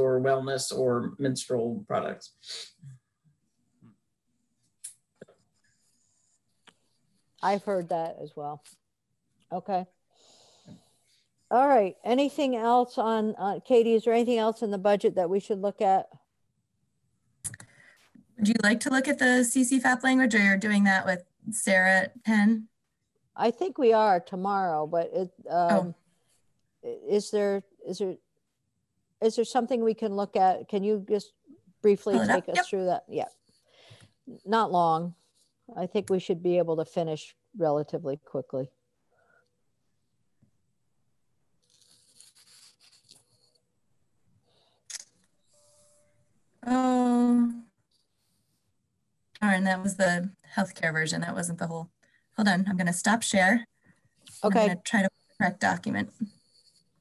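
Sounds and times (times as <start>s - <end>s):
faint room noise: 0.0s - 57.0s.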